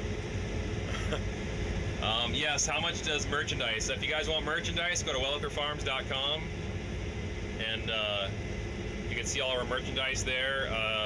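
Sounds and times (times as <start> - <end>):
combine harvester droning: 0.0 - 11.0.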